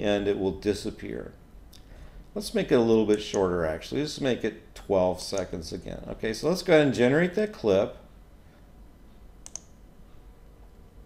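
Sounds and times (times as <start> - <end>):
computer mouse click: 9.4 - 9.8.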